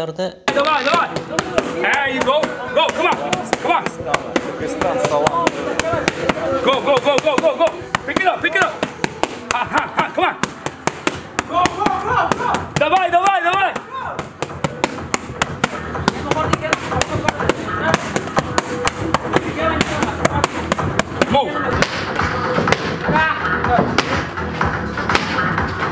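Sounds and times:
man talking: 0.5 - 8.8
boxing gloves smacking mitts: 0.5 - 23.0, 25.1 - 25.5.

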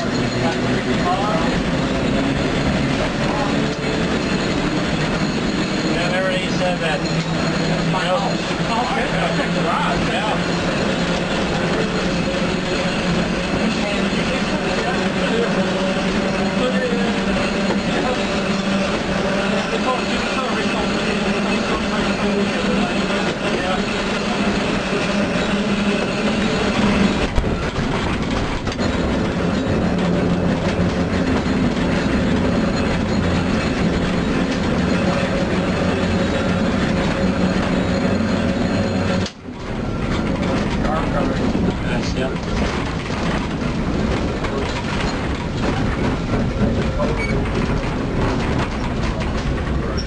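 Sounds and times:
traction motors humming: 0.0 - 50.0
wheels on rail track: 0.0 - 50.0.

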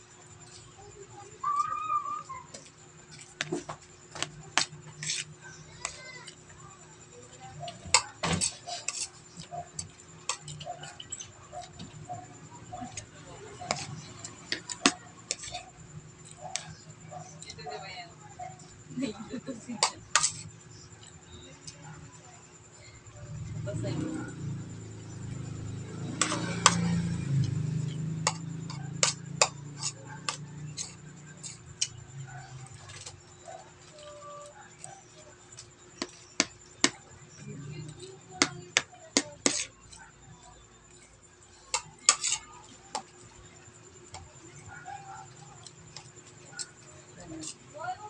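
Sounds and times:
spoon scraping a plate: 4.5 - 6.4, 7.7 - 12.0, 12.9 - 16.7, 19.7 - 21.1, 26.0 - 33.2, 36.0 - 40.2, 40.9 - 43.3.

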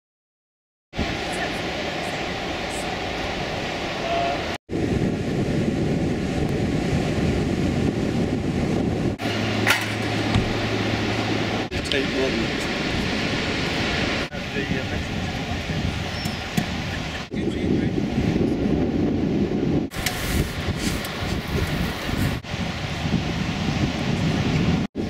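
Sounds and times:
surf breaking on a beach: 1.0 - 25.0.

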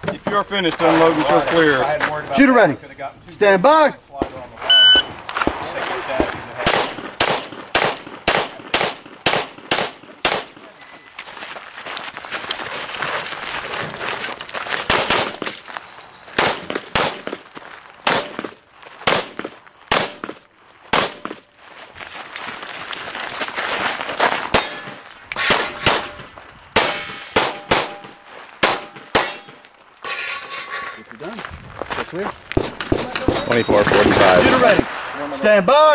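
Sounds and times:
pistol shots: 5.4 - 10.7, 14.9 - 15.6, 16.4 - 17.4, 18.0 - 21.4, 25.4 - 26.2, 26.8 - 29.6, 32.6 - 35.6.

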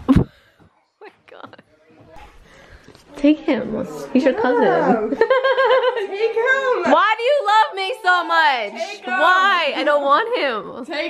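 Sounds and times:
faint indistinct voices: 0.6 - 11.0.

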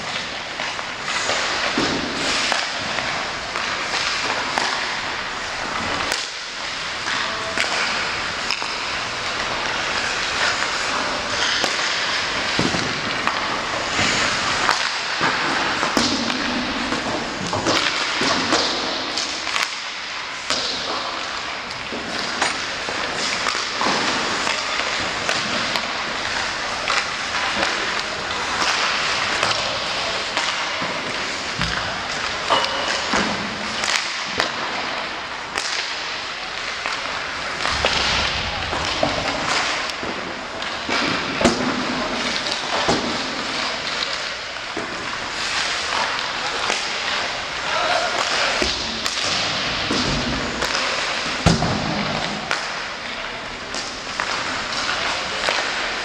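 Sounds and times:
pucks hitting boards and glass: 0.0 - 56.0
skates scraping on ice: 0.0 - 56.0
sticks striking pucks: 0.0 - 56.0.

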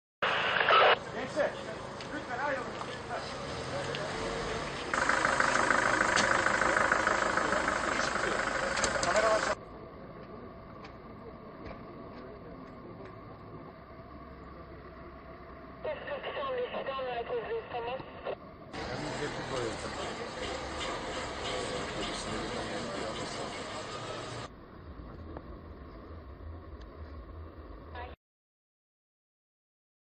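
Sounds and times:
indistinct voices: 0.2 - 24.5
outdoor background noise: 0.2 - 28.2.

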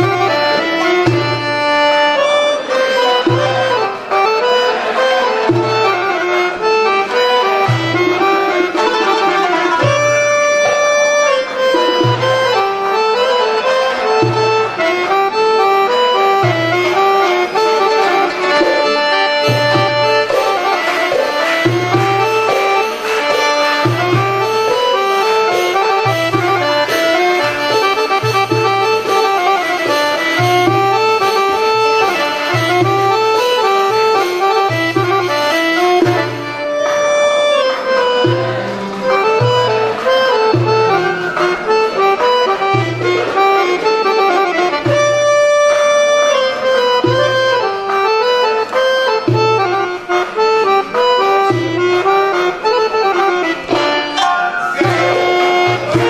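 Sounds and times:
accordion melody: 0.0 - 56.0.

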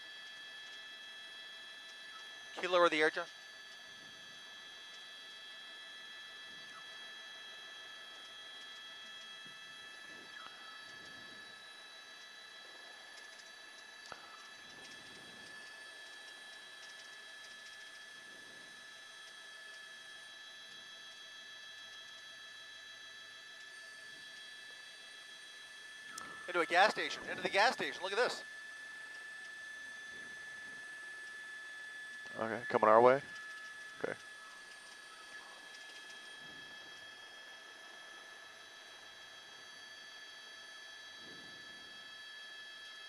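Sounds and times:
high steady tones whining: 0.0 - 43.0.

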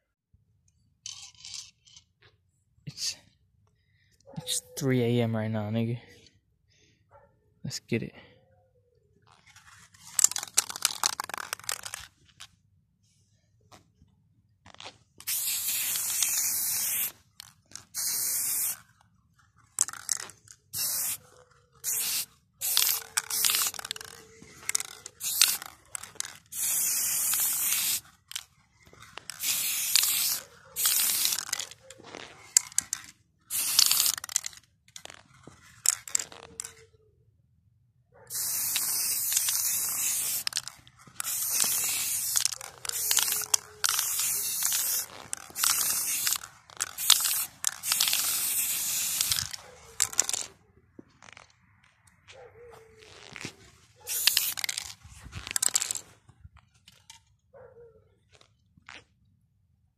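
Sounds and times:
spray paint can hissing: 9.6 - 12.1, 15.2 - 19.0, 19.7 - 36.8, 38.3 - 50.6, 51.2 - 51.5, 53.0 - 56.0.

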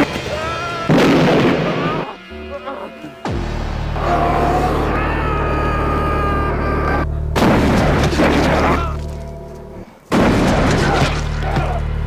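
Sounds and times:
loud noisy blasts: 0.0 - 8.6
steady low drone: 1.0 - 12.0.

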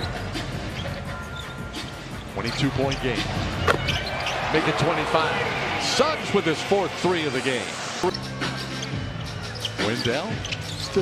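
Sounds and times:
crowd noise: 0.0 - 11.0.

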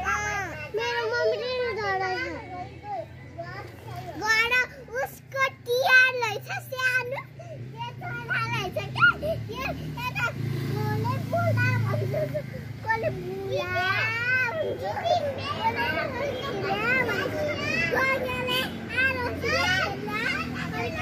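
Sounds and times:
young children chattering: 0.0 - 21.0.

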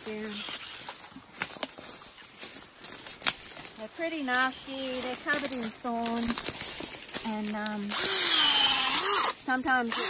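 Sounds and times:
footsteps through dry leaves: 0.0 - 9.8.

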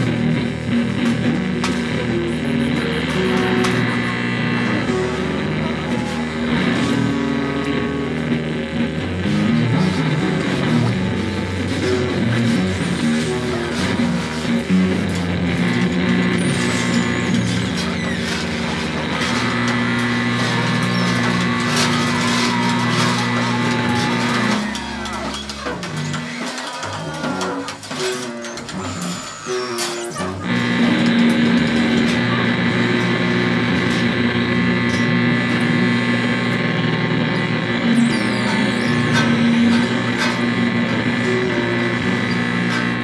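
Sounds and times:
live band droning music: 0.0 - 43.0.

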